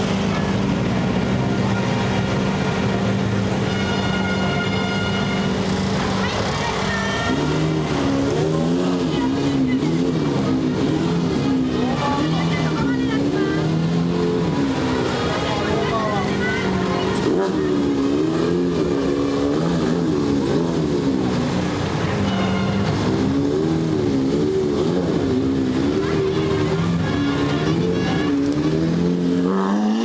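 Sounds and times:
car engine revving: 4.4 - 30.0.

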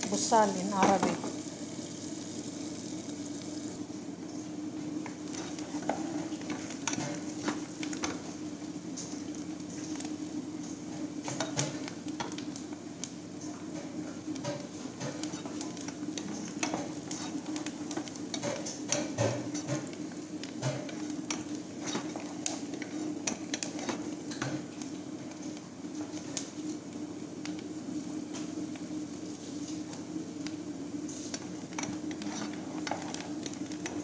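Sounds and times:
onions sizzling in a pan: 0.0 - 34.0.

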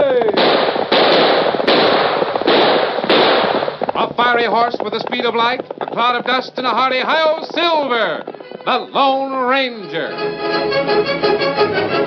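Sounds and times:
gunshots: 0.0 - 9.1.

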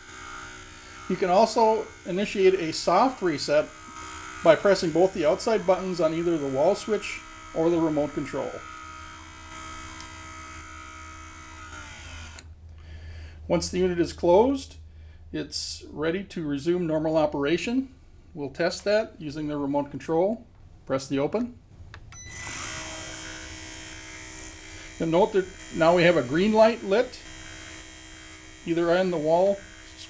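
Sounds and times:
window operator motor running: 0.0 - 12.5, 22.2 - 30.0.

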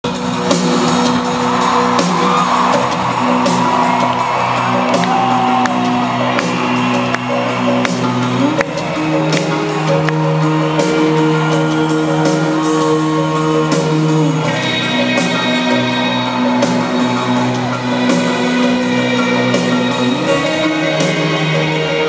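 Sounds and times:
rock band playing live: 0.0 - 22.0.

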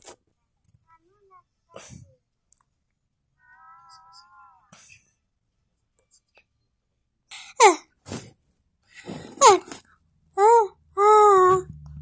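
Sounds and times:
low steady hum: 9.9 - 12.0
high voice wailing: 10.4 - 11.7.

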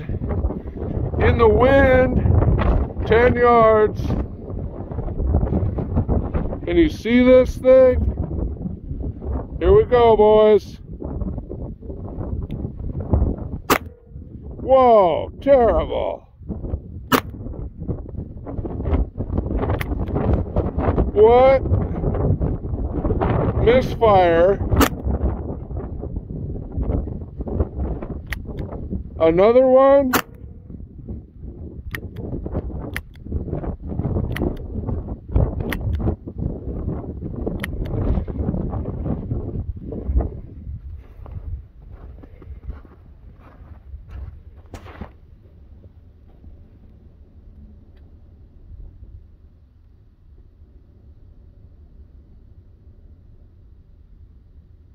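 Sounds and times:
wind buffeting microphone: 0.0 - 53.6.

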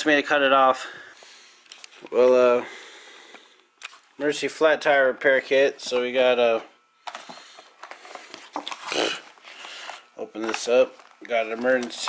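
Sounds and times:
package rustling and crinkling: 7.1 - 12.0.

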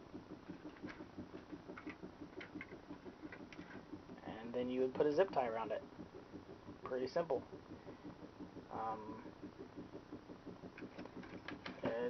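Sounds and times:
faint rapid pulsing: 0.0 - 12.0
small motor clicks and taps: 0.5 - 4.2, 9.4 - 12.0.

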